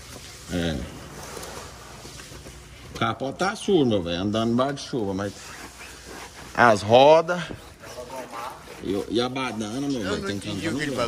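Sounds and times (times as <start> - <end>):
hand scrubbing foamy wheel: 0.0 - 11.0.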